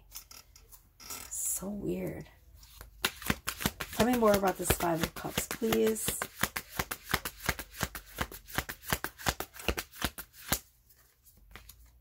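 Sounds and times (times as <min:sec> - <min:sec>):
cards being shuffled: 0:02.6 - 0:12.0.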